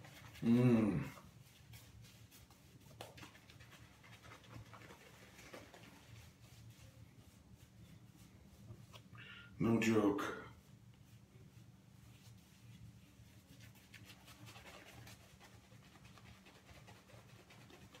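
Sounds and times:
shaving brush swishing lather: 0.0 - 9.0, 9.9 - 18.0.

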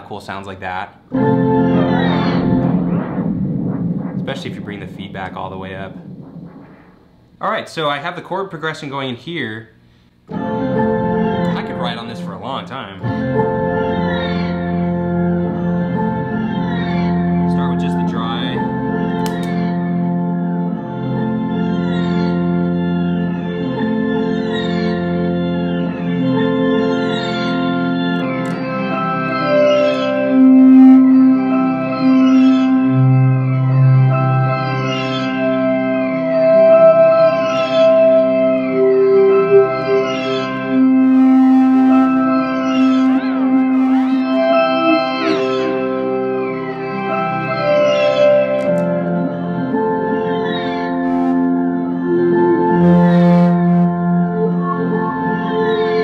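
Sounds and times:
looped organ-like chords: 0.0 - 8.3, 10.3 - 56.0
high falling swoops: 1.2 - 7.6.

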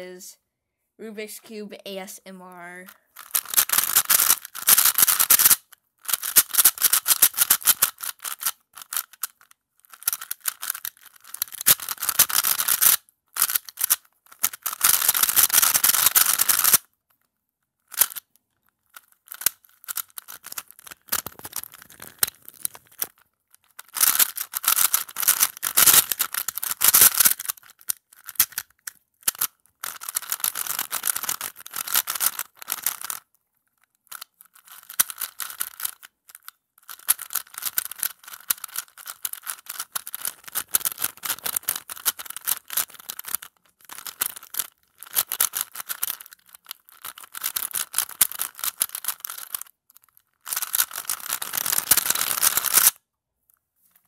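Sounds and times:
plastic puzzle cube clicking: 3.2 - 16.9, 17.8 - 33.4, 34.0 - 53.0.

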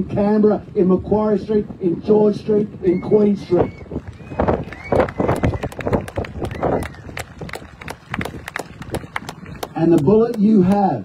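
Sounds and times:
crowd clapping: 3.9 - 11.0.

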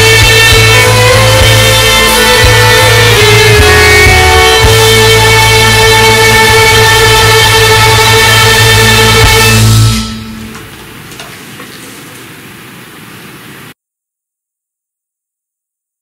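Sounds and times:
violin over backing track: 0.0 - 11.0.

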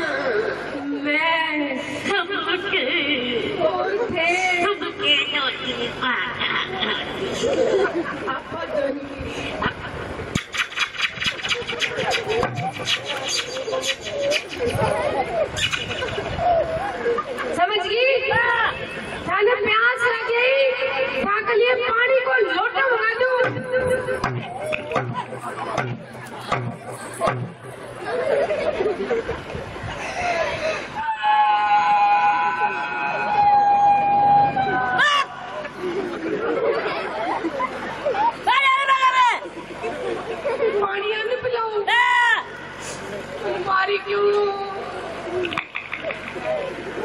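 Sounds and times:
voices chattering: 0.0 - 31.1, 32.3 - 47.0
sharp thumps: 10.3 - 15.0, 23.4 - 28.1.

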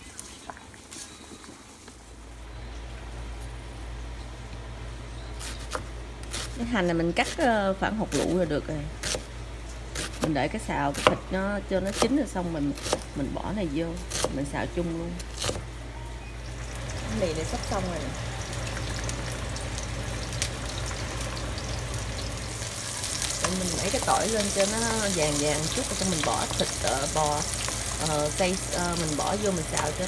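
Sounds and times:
low steady hum: 0.0 - 30.0
pot of water boiling: 16.5 - 30.0.

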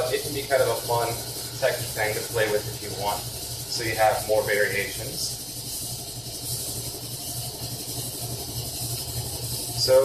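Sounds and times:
refrigerators humming: 0.0 - 10.0.

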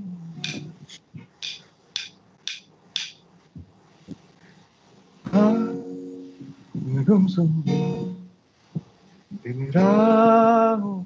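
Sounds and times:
sharp taps: 0.4 - 3.2.

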